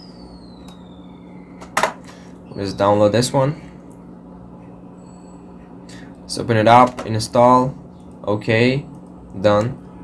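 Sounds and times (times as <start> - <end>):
faint high tone sliding down: 0.0 - 1.8
steady low hum: 0.0 - 10.0.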